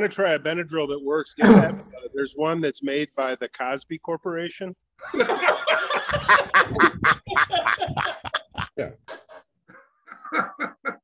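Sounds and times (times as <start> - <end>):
men laughing: 5.0 - 9.4, 10.1 - 11.0.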